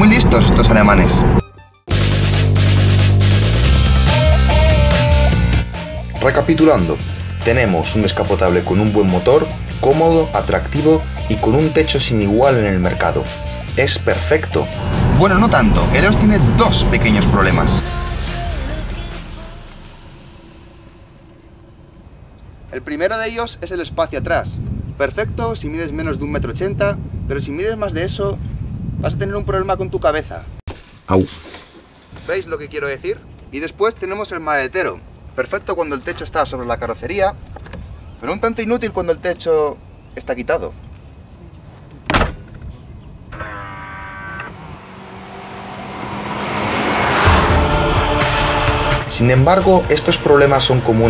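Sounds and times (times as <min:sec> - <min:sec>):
music: 0:00.6 - 0:21.6, 0:47.2 - 0:51.0
whoosh: 0:14.4 - 0:22.8, 0:44.6 - 0:49.2
car engine idling: 0:14.7 - 0:22.8
car boot lid thump: 0:42.0 - 0:42.6.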